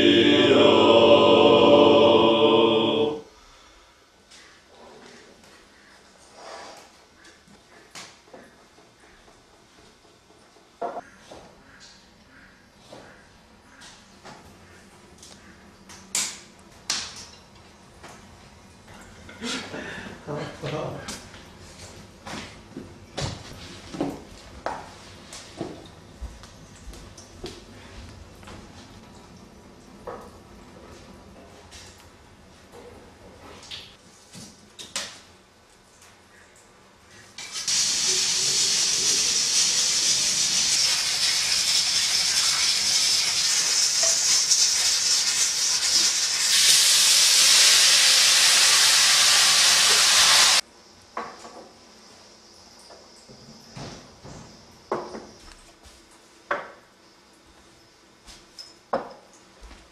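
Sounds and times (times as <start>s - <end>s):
steam hissing from pots: 37.2s - 50.6s
kitchen knocks and clatter: 58.6s - 59.2s.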